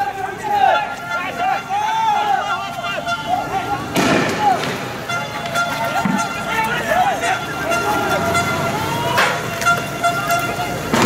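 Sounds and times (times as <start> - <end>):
people shouting: 0.0 - 11.0
sharp bang: 3.9 - 5.0.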